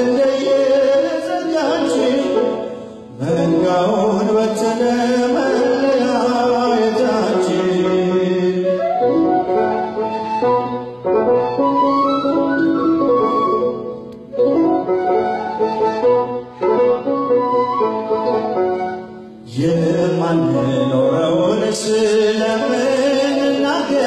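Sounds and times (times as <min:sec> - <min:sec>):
bamboo flute melody: 0:03.4 - 0:21.4.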